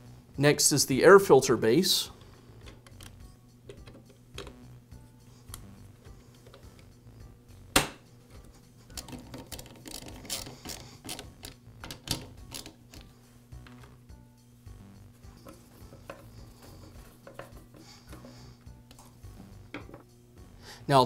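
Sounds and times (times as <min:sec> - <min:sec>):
nut driver clicking and rattling: 0:02.6 - 0:04.6, 0:08.9 - 0:13.1, 0:15.4 - 0:16.4, 0:17.2 - 0:18.3.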